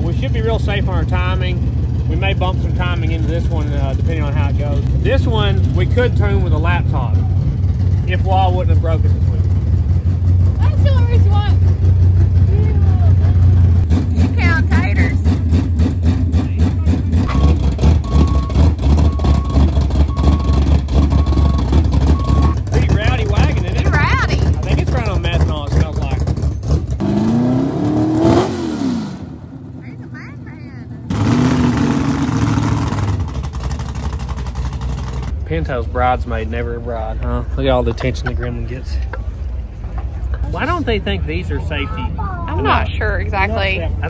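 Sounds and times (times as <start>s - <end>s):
vehicle engine running: 0.0s - 28.5s, 29.1s - 44.0s
engine revving: 0.0s - 37.1s
short beeps: 17.3s - 22.6s.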